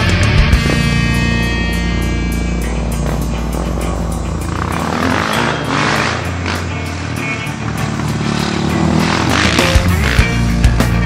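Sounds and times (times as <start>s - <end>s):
dirt bike engine revving: 0.0s - 11.0s
rock music: 0.0s - 11.0s.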